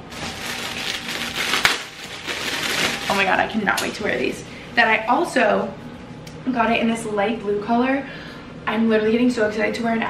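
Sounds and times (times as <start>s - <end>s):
plastic bag crinkling: 0.0s - 3.6s.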